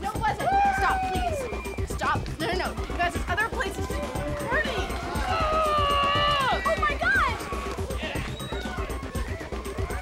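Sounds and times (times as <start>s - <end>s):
party music with steady beat: 0.0s - 10.0s.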